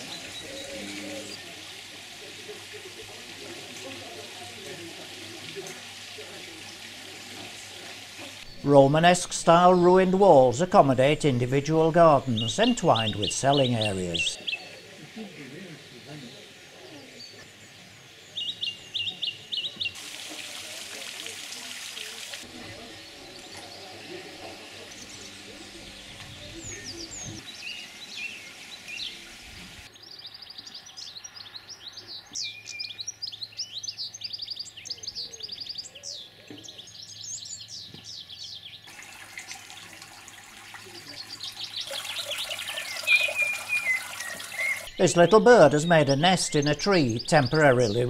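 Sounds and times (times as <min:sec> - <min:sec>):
songbirds singing and chirping: 0:00.0 - 0:03.2, 0:03.8 - 0:20.0, 0:21.8 - 0:48.0.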